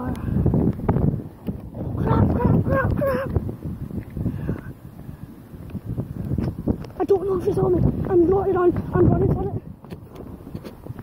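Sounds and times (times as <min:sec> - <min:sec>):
wind buffeting microphone: 0:00.0 - 0:11.0
person exclaiming: 0:02.0 - 0:03.4.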